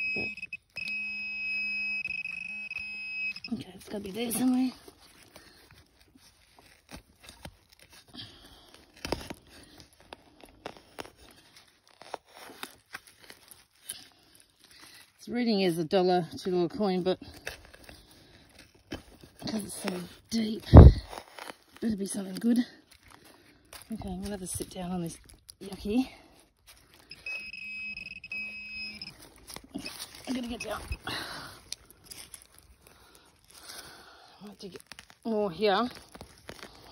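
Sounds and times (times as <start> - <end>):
metal detector alert tones: 0.0 - 4.8, 27.0 - 31.2
dry grass and soil crunching: 0.0 - 36.9.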